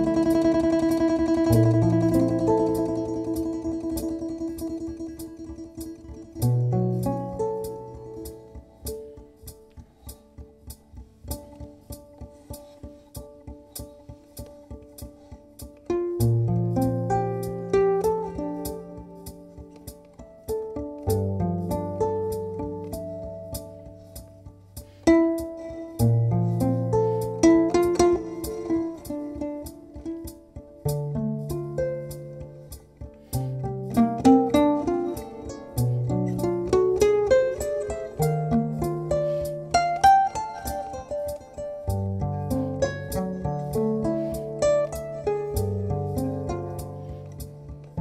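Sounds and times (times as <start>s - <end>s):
held low notes: 0.0s - 48.0s
plucked domra runs: 0.0s - 48.0s.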